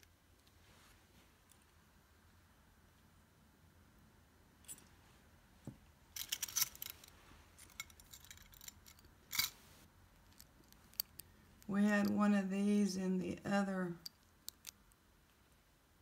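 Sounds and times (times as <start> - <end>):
metal jewelry clinking: 4.6 - 4.9, 6.1 - 12.2.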